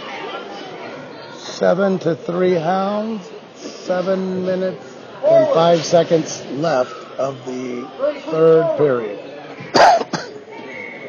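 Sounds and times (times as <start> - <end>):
person coughing: 9.7 - 10.4.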